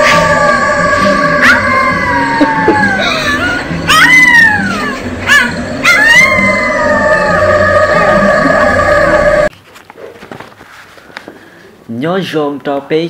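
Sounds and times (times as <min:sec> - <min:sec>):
dog howling: 0:00.0 - 0:09.5
eerie music: 0:00.0 - 0:09.5
dog yelping: 0:01.4 - 0:06.8.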